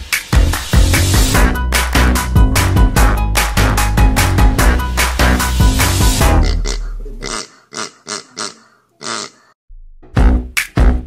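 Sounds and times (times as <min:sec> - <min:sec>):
background music: 0:00.0 - 0:07.1
child making pig oinks: 0:06.4 - 0:09.6.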